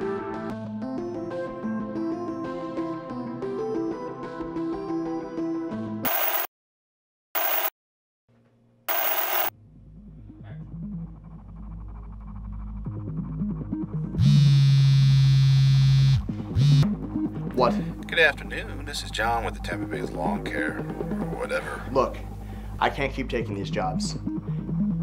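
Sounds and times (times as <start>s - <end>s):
mobile phone buzzing ring: 6.1s - 6.5s, 7.4s - 7.7s, 8.9s - 9.5s.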